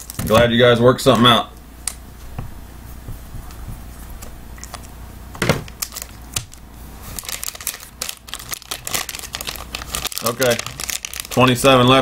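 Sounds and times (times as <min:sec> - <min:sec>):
foil wrapper crinkling and tearing: 0:00.0 - 0:00.3, 0:05.7 - 0:12.0.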